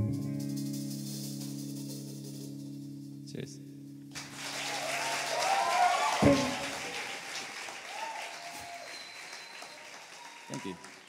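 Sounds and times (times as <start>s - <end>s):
audience applauding and whooping: 4.1s - 11.0s.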